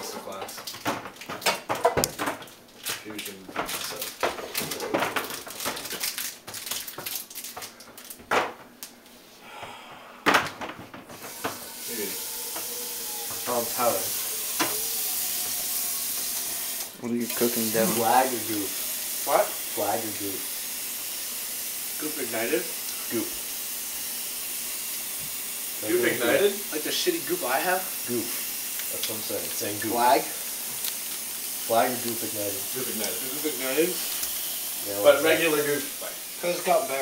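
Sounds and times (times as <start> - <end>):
kitchen clicks and knocks: 0.0 - 5.8
steady hiss: 11.1 - 37.0
food sizzling in a hot pan: 11.2 - 37.0
person speaking a word: 17.1 - 18.6.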